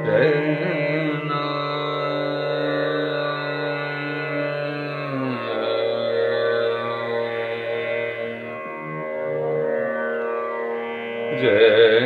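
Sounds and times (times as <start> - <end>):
man singing classical vocal: 0.0 - 8.6, 11.3 - 12.0.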